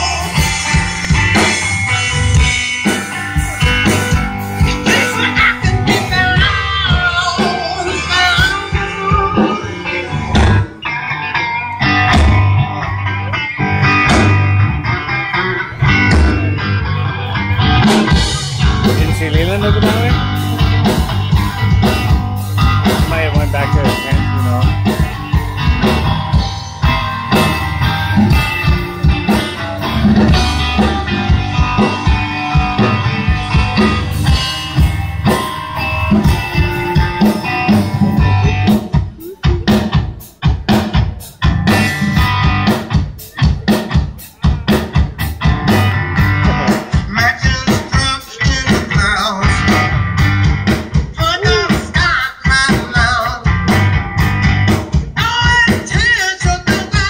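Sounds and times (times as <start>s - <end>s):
blues rock guitar with bending notes: 0.0s - 57.0s
drum kit: 0.0s - 57.0s.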